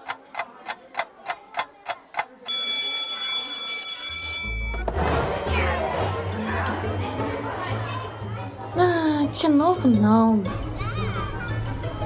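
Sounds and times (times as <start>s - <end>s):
clock ticking: 0.0s - 3.5s
bell ringing: 2.5s - 4.8s.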